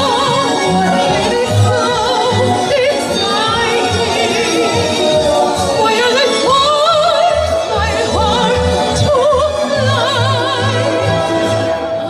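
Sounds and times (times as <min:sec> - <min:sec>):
woman singing soprano with vibrato: 0:00.0 - 0:12.0.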